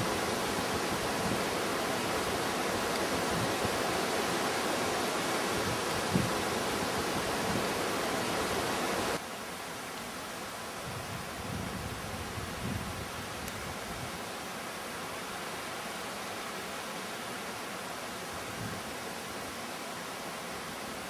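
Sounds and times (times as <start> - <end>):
mountain stream rushing: 0.0 - 21.0.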